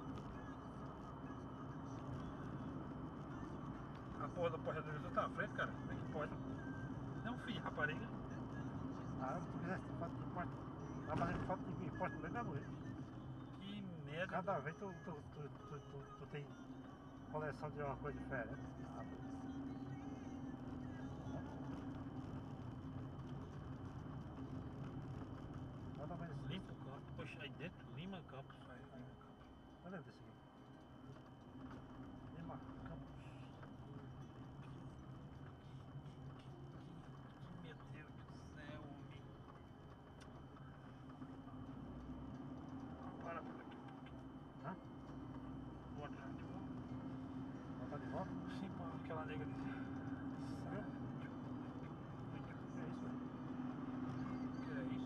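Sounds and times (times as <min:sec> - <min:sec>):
vehicle engine drone: 0:00.0 - 0:55.0.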